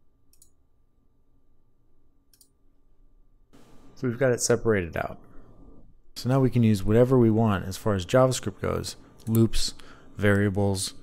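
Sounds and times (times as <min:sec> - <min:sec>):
computer mouse clicks: 0:00.3 - 0:00.6, 0:02.3 - 0:02.6.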